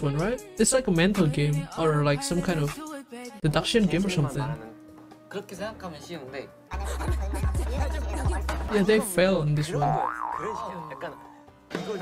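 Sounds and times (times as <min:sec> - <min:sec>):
background music: 0:00.0 - 0:12.0
cartoon boing sound effect: 0:09.8 - 0:11.4.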